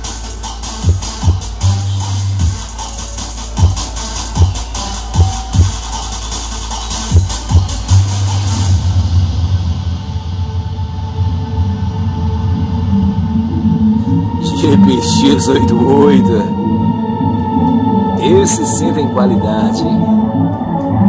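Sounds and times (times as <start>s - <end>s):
electronic trap music: 0.0s - 10.8s, 11.7s - 21.0s
sustained deep bass: 0.0s - 21.0s
kick drum hits: 0.8s - 1.6s, 5.2s - 5.8s, 7.1s - 7.9s.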